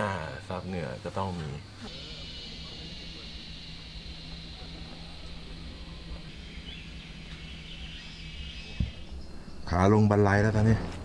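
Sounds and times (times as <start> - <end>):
insect chorus: 0.0 - 11.0
low steady hum: 0.0 - 11.0.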